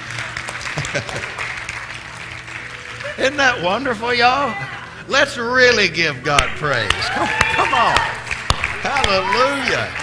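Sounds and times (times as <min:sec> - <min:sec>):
congregation applauding: 0:00.0 - 0:04.5, 0:06.6 - 0:10.0.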